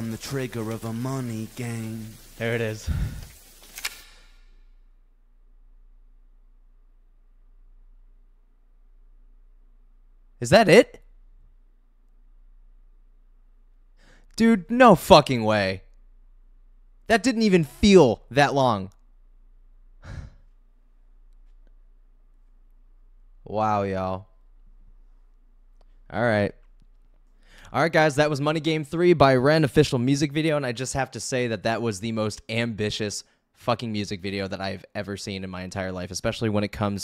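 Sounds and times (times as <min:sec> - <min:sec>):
man sighing: 0:02.8 - 0:03.4, 0:20.0 - 0:20.5
faint low hum: 0:04.6 - 0:14.4, 0:15.3 - 0:27.6.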